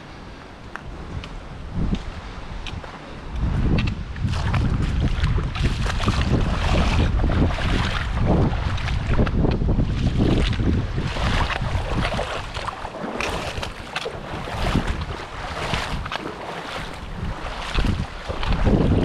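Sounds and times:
creek water over rocks: 0.0 - 19.0
wind buffeting microphone: 0.0 - 19.0.

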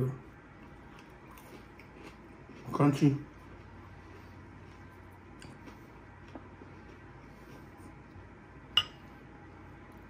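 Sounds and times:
faint room hiss: 0.0 - 10.0
clink against glass bowl: 8.8 - 9.0.

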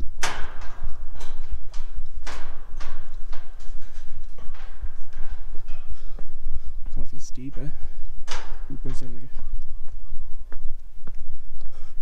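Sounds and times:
footsteps clanking on metal grating: 0.0 - 12.0
steady low rumble: 0.0 - 12.0.

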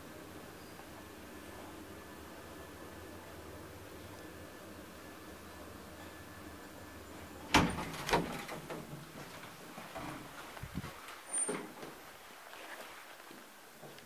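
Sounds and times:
elevator running hum: 0.0 - 11.4
door thudding shut: 7.5 - 8.9
elevator doors clattering open: 7.5 - 10.3.

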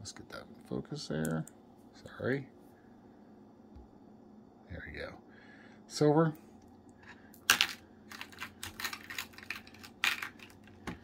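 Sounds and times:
beads clicking and clattering: 7.4 - 10.8.

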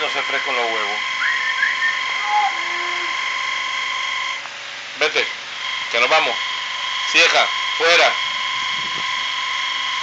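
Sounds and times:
electric fan whining: 0.0 - 10.0.

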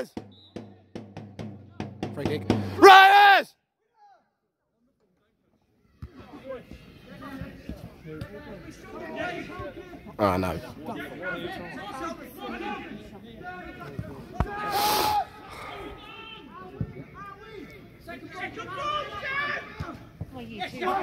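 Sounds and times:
voices calling and chattering: 4.7 - 21.0.

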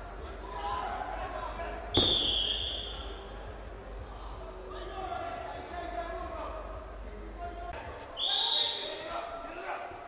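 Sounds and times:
voices calling in a hall: 0.0 - 10.0
referee's whistle blast: 2.0 - 3.0, 8.2 - 8.9.

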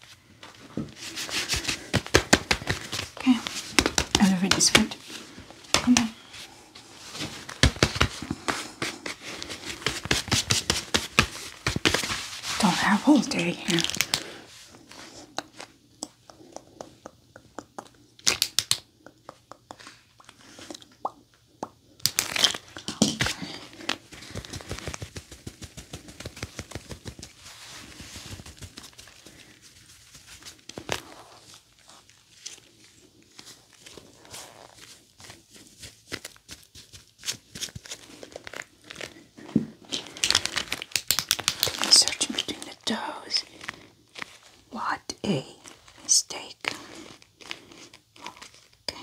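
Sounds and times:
gloved hands rubbing and crinkling: 0.0 - 49.0.

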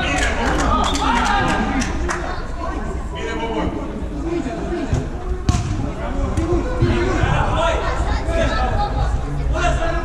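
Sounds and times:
football kicked thud: 4.9 - 5.8.

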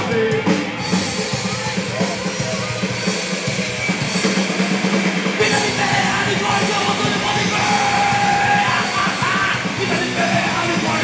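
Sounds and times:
bass guitar: 0.0 - 11.0
distorted electric guitar: 0.0 - 11.0
drums: 0.0 - 11.0
punk rock band playing loudly: 0.0 - 11.0.

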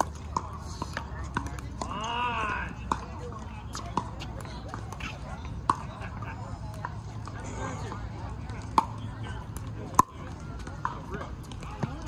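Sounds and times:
murmuring voices: 0.0 - 12.0.

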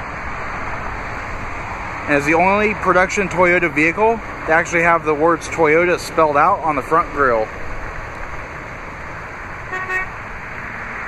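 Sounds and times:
car horn toot: 9.7 - 10.2.

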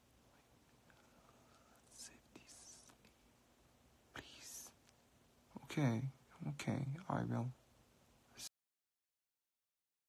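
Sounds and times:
soft hissy sounds: 0.0 - 8.5
man whispering: 0.3 - 3.2, 4.1 - 4.8, 5.5 - 7.6, 8.3 - 8.5.

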